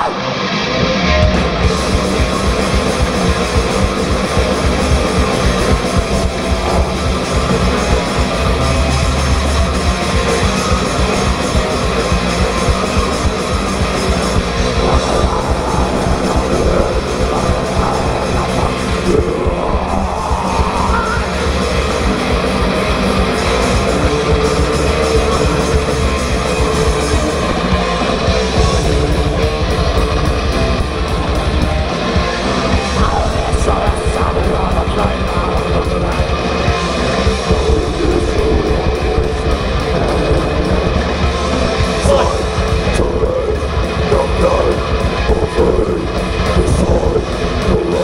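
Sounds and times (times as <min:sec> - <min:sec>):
metal band playing live: 0:00.0 - 0:48.0.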